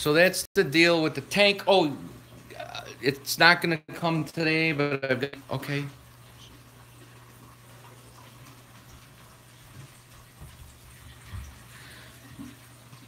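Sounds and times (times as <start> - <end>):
running water: 0.0 - 13.0.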